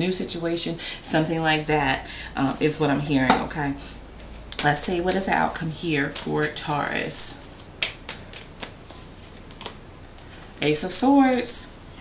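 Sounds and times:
cards being shuffled: 6.1s - 10.5s.

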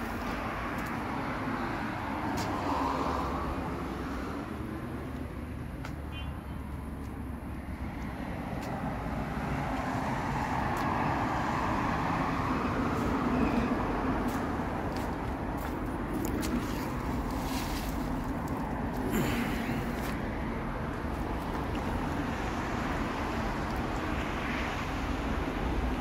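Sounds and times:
road traffic hum: 0.0s - 26.0s.

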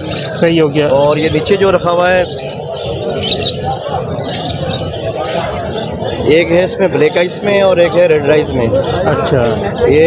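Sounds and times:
cage birds chirping: 0.0s - 10.0s
murmur of background voices: 0.0s - 10.0s.

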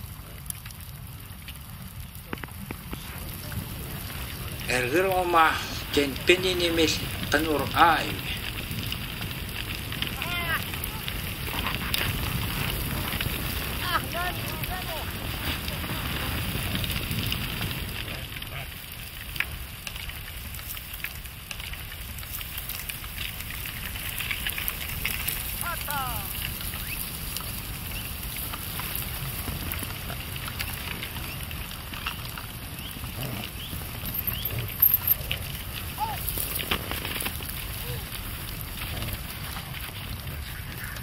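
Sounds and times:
hooves crackling over snow: 0.0s - 41.0s.

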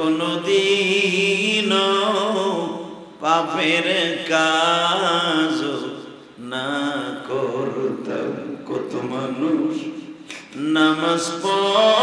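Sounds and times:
man chanting a sermon: 0.0s - 12.0s.

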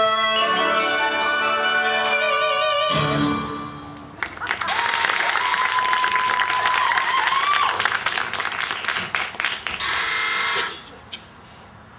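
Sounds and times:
audience applauding: 4.2s - 9.8s
long whistle: 4.7s - 5.8s.

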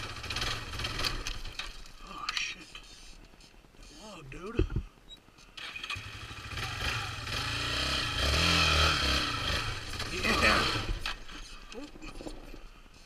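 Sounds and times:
quad engine under throttle: 0.0s - 1.7s, 5.6s - 11.6s.

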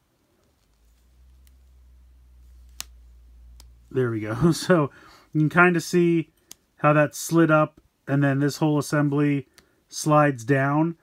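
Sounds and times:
faint low hum: 0.0s - 9.8s.

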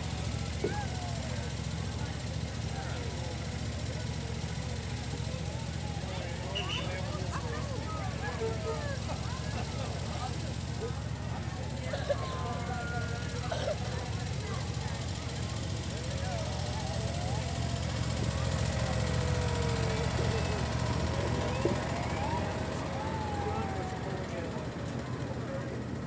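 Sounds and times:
crowd chatter: 0.0s - 26.0s
miniature train locomotive drone: 0.0s - 26.0s
children's voices: 11.6s - 25.7s.

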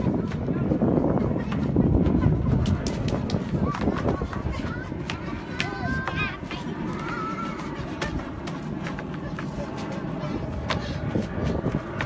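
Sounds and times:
footsteps on wooden decking: 0.0s - 12.0s.

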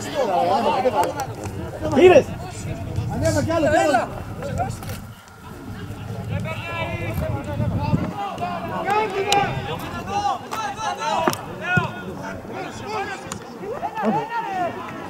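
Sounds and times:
players shouting: 0.0s - 15.0s.

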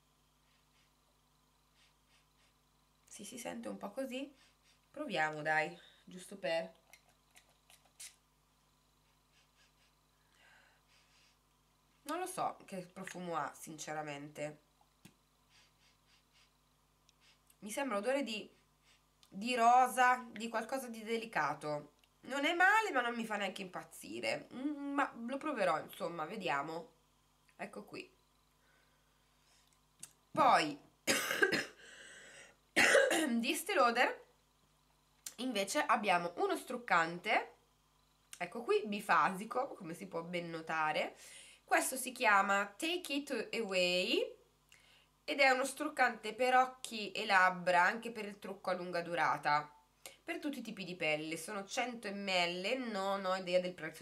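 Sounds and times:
pump spray hisses: 1.7s - 2.6s, 15.5s - 16.6s
faint breathy sound: 4.2s - 5.0s, 5.7s - 6.2s, 8.9s - 12.0s, 15.4s - 17.5s, 28.5s - 29.8s, 31.8s - 32.6s, 41.2s - 41.7s
woman coughing: 31.1s - 31.8s, 32.8s - 33.4s.

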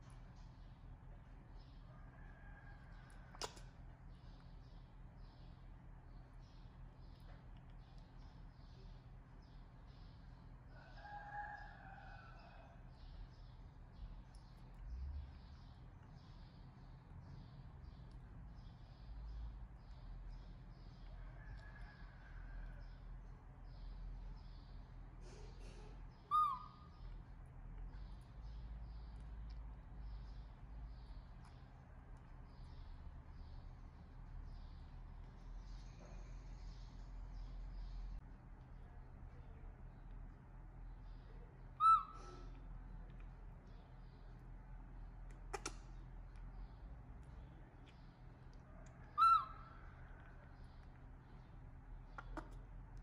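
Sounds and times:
baby monkey cooing: 26.2s - 27.0s, 41.8s - 42.6s, 49.1s - 49.7s.

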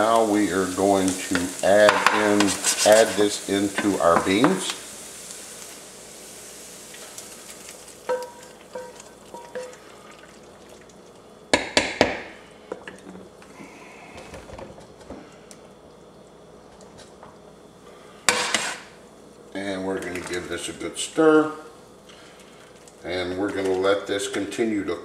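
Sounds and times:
faint sizzle: 0.0s - 25.0s.

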